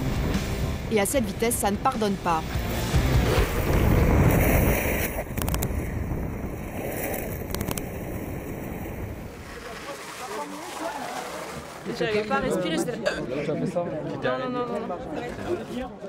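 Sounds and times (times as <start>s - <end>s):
wind rushing over microphone: 2.6s - 9.5s
longboards rolling on asphalt: 2.6s - 9.7s
sharp clicks: 5.3s - 5.7s, 7.5s - 7.9s.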